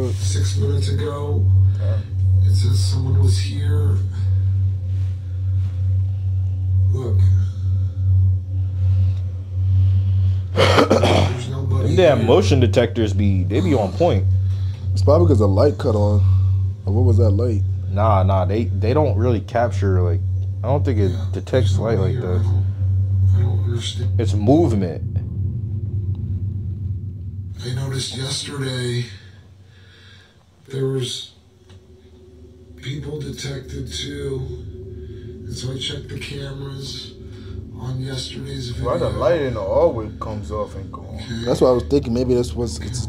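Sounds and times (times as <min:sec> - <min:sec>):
man's voice: 0:00.0 - 0:04.4, 0:10.6 - 0:14.4, 0:15.0 - 0:22.7, 0:32.8 - 0:34.7, 0:35.5 - 0:37.2, 0:37.8 - 0:43.0
loud low pulsing drone: 0:00.0 - 0:43.0
low steady rumble: 0:00.0 - 0:43.0.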